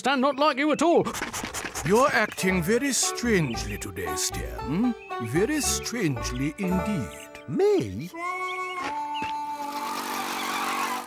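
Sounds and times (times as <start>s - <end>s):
held musical note: 2.4s - 8.8s
small engine approaching: 9.5s - 11.0s.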